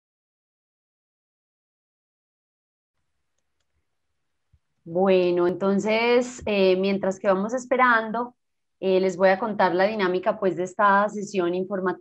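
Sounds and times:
woman speaking: 0:04.9 - 0:12.0.

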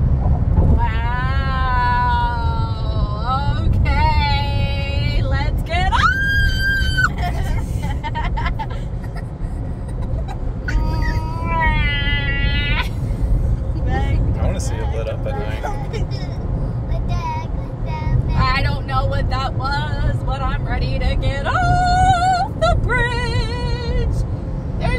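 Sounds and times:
road rumble inside car: 0:00.0 - 0:24.9.

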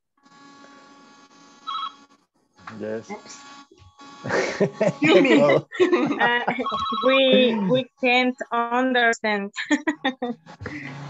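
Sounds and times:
electronic ringing tone: 0:01.7 - 0:02.0, 0:06.6 - 0:07.3
faint phone line hum: 0:04.0 - 0:07.9.

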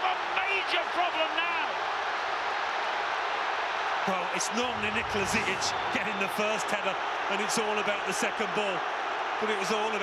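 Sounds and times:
stadium crowd cheering: 0:00.0 - 0:10.0
commentator talking: 0:04.2 - 0:08.8.

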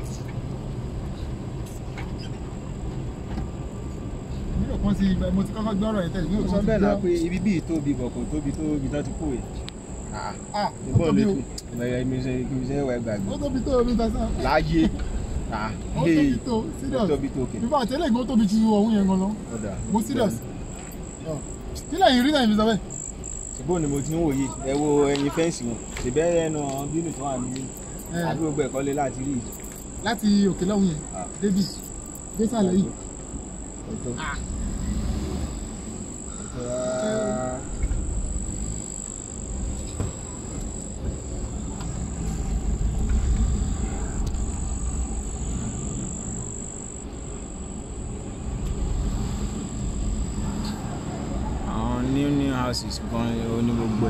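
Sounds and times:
car rumbling: 0:00.0 - 0:54.0
crickets trilling: 0:00.0 - 0:54.0
thin high whine: 0:05.5 - 0:54.0.

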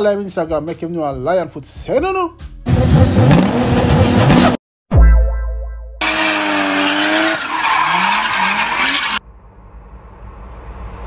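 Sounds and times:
car engine revving: 0:06.0 - 0:09.2
tyres screeching: 0:06.0 - 0:09.2.

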